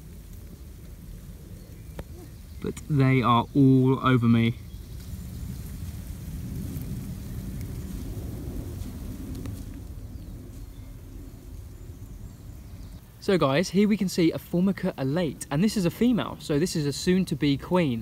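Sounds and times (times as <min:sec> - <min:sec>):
low rumble: 0:00.0 - 0:13.2
ants rustling in leaf litter: 0:00.0 - 0:18.0.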